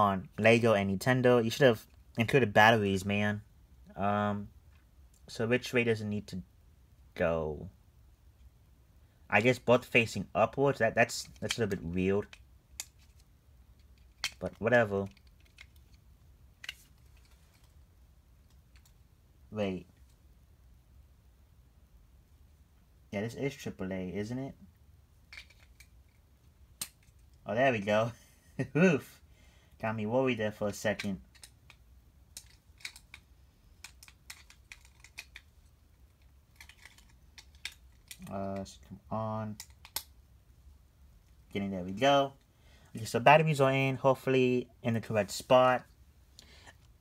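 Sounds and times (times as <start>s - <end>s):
small plastic parts clicking: 11.1s - 17.8s, 18.4s - 19.0s, 25.2s - 27.4s, 30.7s - 38.8s, 39.5s - 40.2s.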